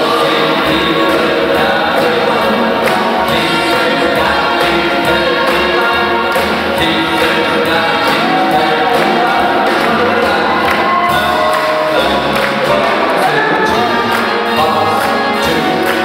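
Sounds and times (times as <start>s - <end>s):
big band swing music: 0.0s - 16.0s.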